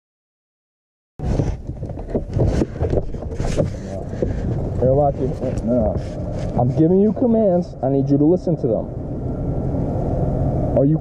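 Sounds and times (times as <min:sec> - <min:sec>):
brief rustle: 0:01.2 - 0:06.8
vehicle rumbling: 0:01.2 - 0:11.0.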